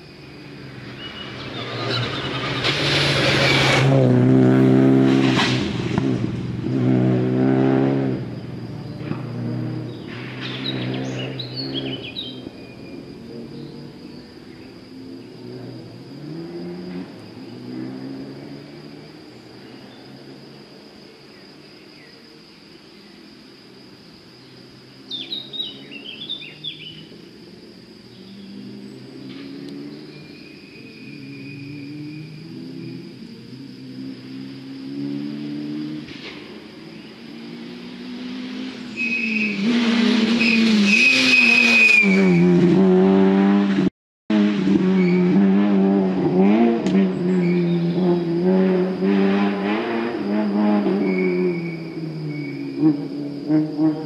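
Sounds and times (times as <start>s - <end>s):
rally car engine rising and falling: 0.5s - 20.7s, 28.1s - 54.0s.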